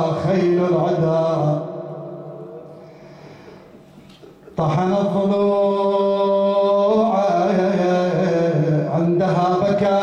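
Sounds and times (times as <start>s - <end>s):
man chanting through a microphone: 0.0s - 2.8s, 4.6s - 10.0s.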